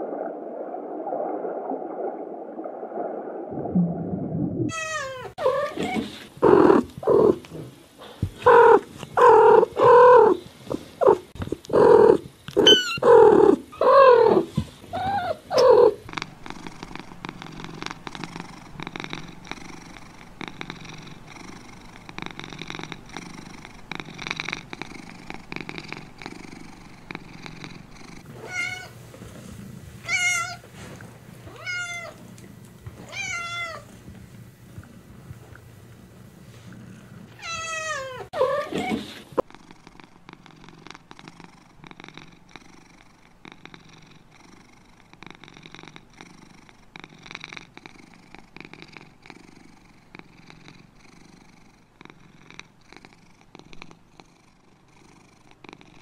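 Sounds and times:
cat meowing: 4.7 - 6.1, 12.6 - 16.0, 28.4 - 28.9, 30.1 - 30.6, 31.5 - 32.2, 33.1 - 33.8, 37.4 - 39.0
cat purring: 5.4 - 56.0
kitten mewing: 11.0 - 16.0.

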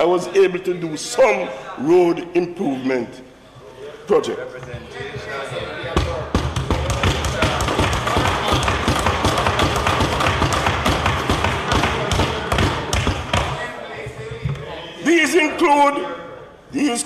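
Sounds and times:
voices in a chamber: 0.0 - 17.0
people thumping desks: 5.0 - 14.6.

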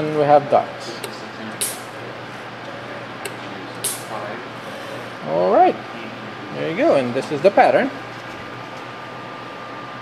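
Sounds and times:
short sharp hissing clicks: 1.6 - 1.9, 3.8 - 4.1.

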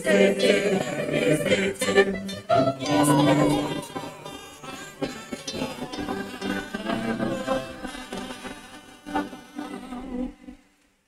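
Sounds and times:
choir singing a hymn: 0.0 - 10.6.

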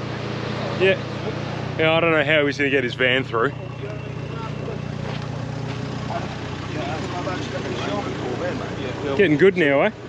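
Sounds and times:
engine idling: 0.0 - 10.0
faint voices: 0.0 - 10.0.

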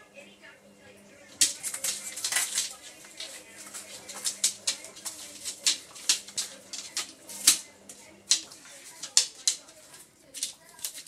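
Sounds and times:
cardboard and paper crinkling: 1.3 - 11.0.

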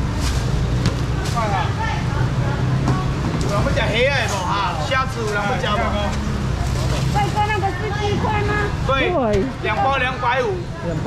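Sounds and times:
people talking: 1.2 - 11.0.

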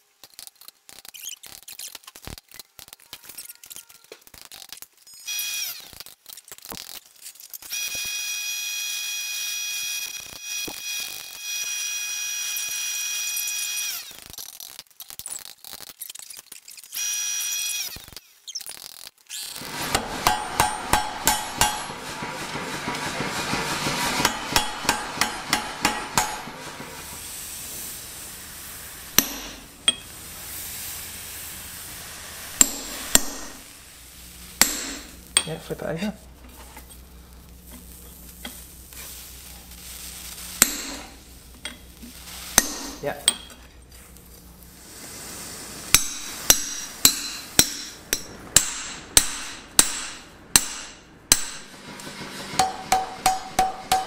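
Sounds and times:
power hammer blows: 19.6 - 27.5, 29.0 - 30.0
hammer strikes on anvil: 19.8 - 27.2, 29.1 - 30.0, 32.6 - 33.6, 34.6 - 35.5, 40.6 - 41.1, 42.6 - 43.5, 46.0 - 54.0.

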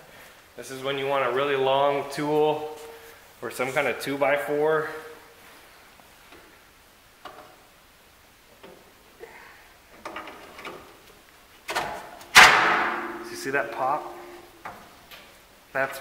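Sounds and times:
loud metal pop: 12.3 - 13.4.

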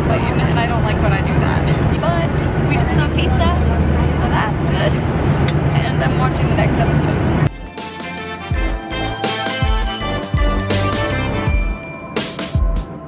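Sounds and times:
people talking: 0.0 - 5.0, 5.6 - 7.2.

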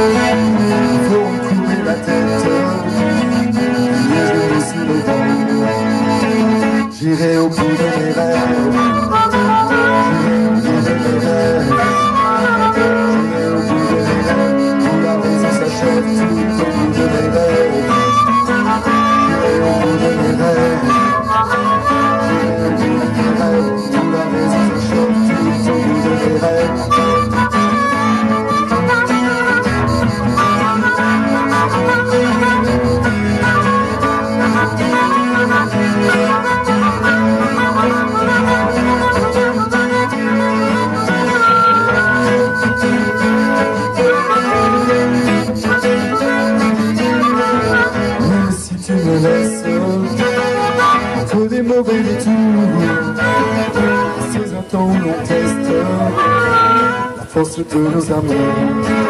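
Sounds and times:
harmonica solo: 0.0 - 59.0
strummed acoustic guitar: 0.0 - 59.0.

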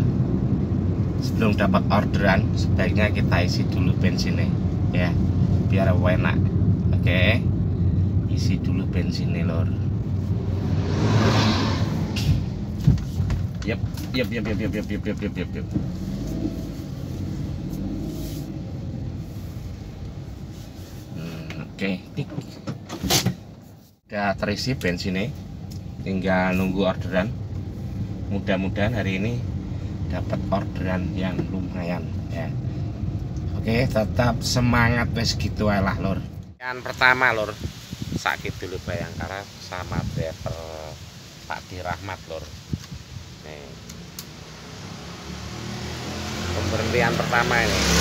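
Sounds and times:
vehicle engine approaching: 0.0 - 22.2, 43.2 - 48.0
car cabin rumble: 11.8 - 18.0.

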